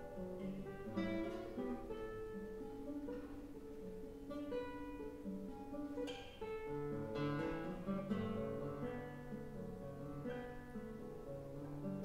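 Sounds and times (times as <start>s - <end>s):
classical guitar fingerstyle: 0.0s - 12.0s.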